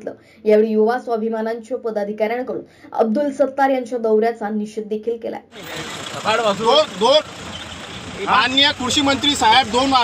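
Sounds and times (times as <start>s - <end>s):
vehicle engine hum: 5.5s - 10.0s
men shouting: 5.6s - 10.0s.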